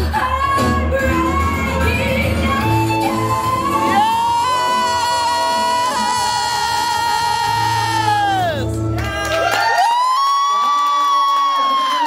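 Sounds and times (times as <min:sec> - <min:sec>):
audience cheering: 0:03.9 - 0:12.0.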